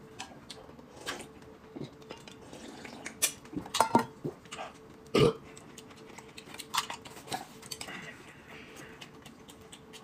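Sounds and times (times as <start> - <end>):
person burping: 5.1 - 5.4.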